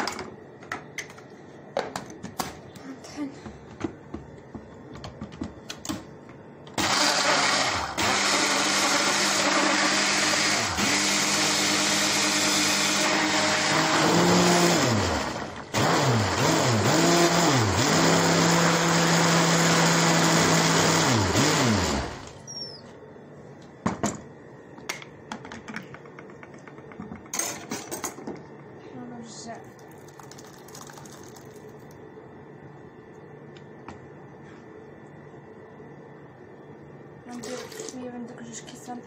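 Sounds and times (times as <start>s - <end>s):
blender motor running: 6.8s - 22.4s.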